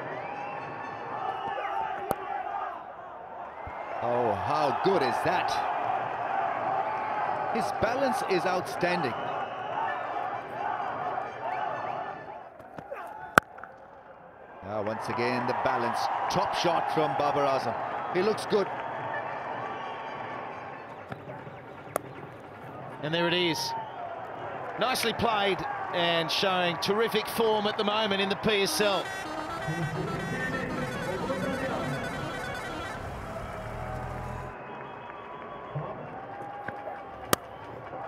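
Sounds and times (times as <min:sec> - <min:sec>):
stadium crowd noise: 0:00.0 - 0:38.0
bat hitting ball crack: 0:02.0 - 0:02.3, 0:12.6 - 0:13.9, 0:36.7 - 0:37.6
bat hitting cricket ball: 0:21.1 - 0:22.3, 0:37.3 - 0:37.6.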